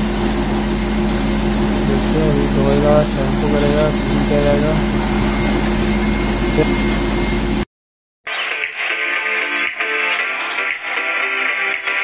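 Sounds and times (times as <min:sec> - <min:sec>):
pressure washer spraying: 0:00.0 - 0:05.0.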